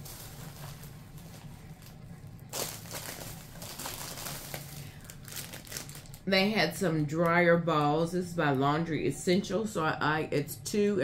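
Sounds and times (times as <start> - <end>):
plastic crinkling and rustling: 0.0 - 6.3.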